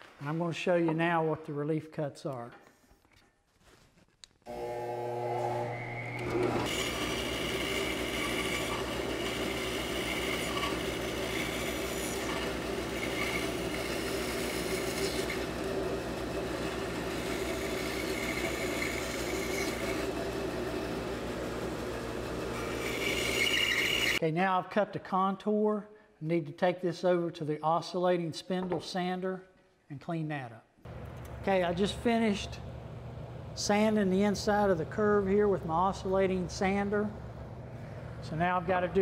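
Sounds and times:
bandsaw blade cutting wood: 0:04.5 - 0:21.0, 0:21.6 - 0:24.2
bandsaw motor humming: 0:04.5 - 0:24.2.

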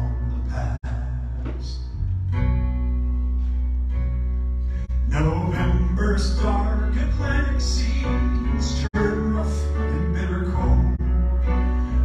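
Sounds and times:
electric bass: 0:00.0 - 0:12.0
grand piano: 0:00.0 - 0:12.0.

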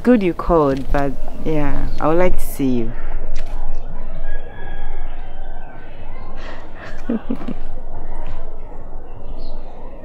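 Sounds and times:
low background rumble: 0:00.0 - 0:10.0.

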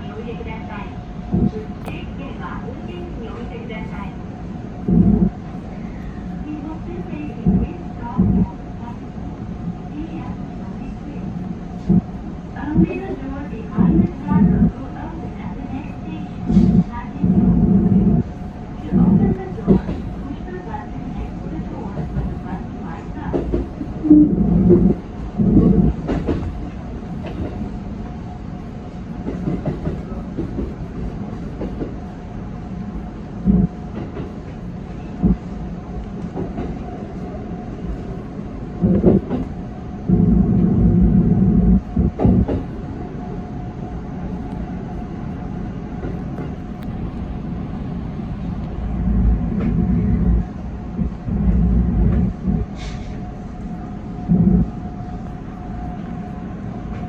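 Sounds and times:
electric train rolling rumble: 0:00.0 - 0:57.0.

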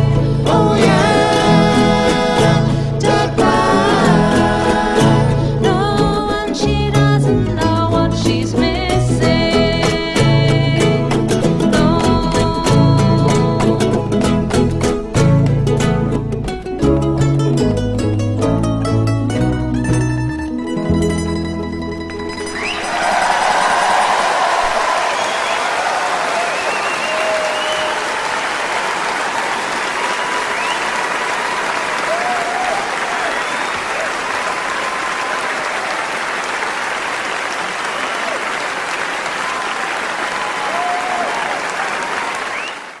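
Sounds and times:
audience applauding: 0:22.1 - 0:43.0
faint whoops of cheering: 0:22.6 - 0:36.1, 0:37.7 - 0:43.0.

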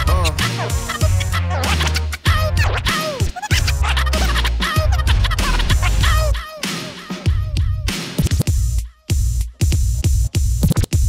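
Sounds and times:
bass of a beat: 0:00.0 - 0:11.0
turntable scratching: 0:00.0 - 0:11.0.

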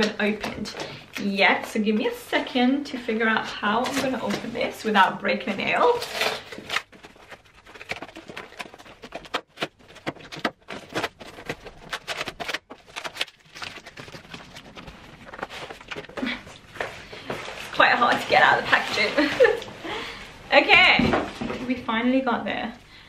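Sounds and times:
woman's voice: 0:00.0 - 0:06.1, 0:17.7 - 0:19.7, 0:20.5 - 0:22.8.

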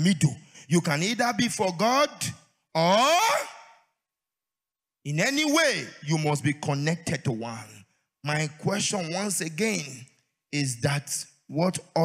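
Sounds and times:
preacher's voice through microphone: 0:00.0 - 0:03.7, 0:05.1 - 0:12.0.

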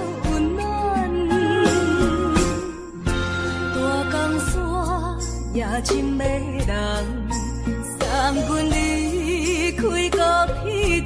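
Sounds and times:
pop ballad with vibrato melody: 0:00.0 - 0:11.0.

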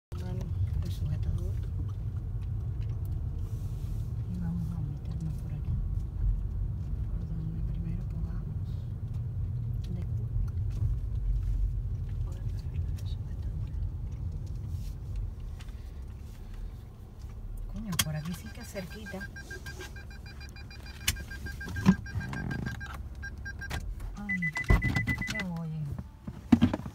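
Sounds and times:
car engine and tyres rumbling: 0:00.1 - 0:26.9.

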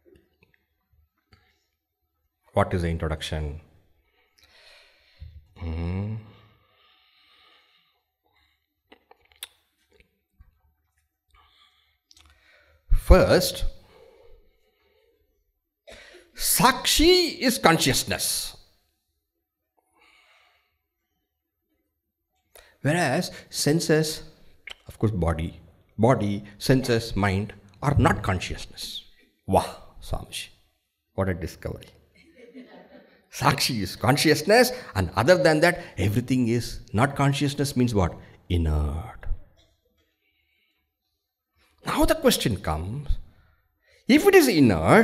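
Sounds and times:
man speaking: 0:02.5 - 0:03.7, 0:12.9 - 0:13.8, 0:16.4 - 0:18.7, 0:22.8 - 0:30.6, 0:31.2 - 0:32.0, 0:33.3 - 0:39.5, 0:41.8 - 0:43.2, 0:44.1 - 0:45.0.

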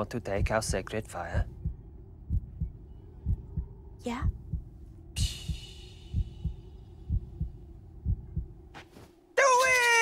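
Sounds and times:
low heartbeat-like double thuds: 0:00.0 - 0:08.7.

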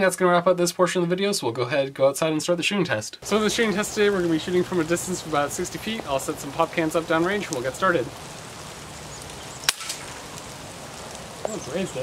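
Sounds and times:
air rifle shot crack: 0:09.6 - 0:10.4.

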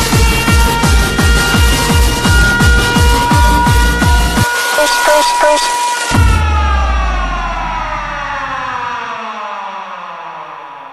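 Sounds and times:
synth chord sliding down: 0:00.0 - 0:10.9.

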